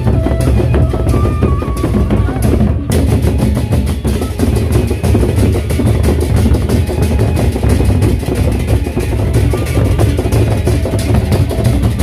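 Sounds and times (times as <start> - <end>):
barrel drums beaten fast: 0.0 - 12.0.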